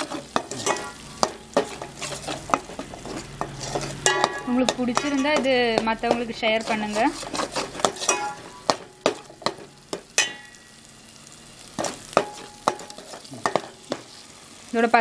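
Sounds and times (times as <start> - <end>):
spoon scraping a metal pot: 0.0 - 10.0
paste sizzling in oil: 0.0 - 15.0.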